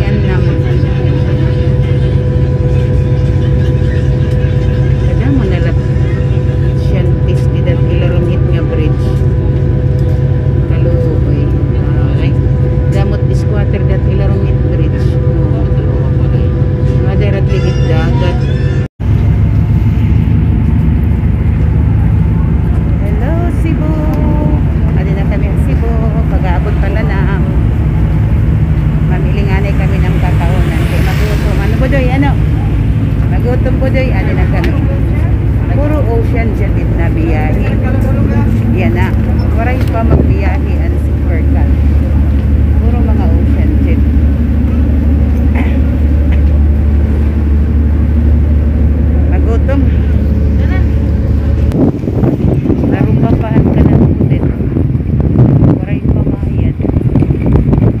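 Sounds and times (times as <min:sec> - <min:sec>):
crowd chatter: 0:00.0 - 0:58.0
ferry engine hum: 0:00.0 - 0:58.0.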